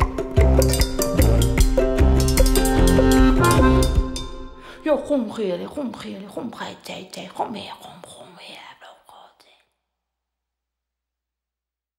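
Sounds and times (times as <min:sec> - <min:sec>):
person whispering syllables: 0:05.6 - 0:09.8.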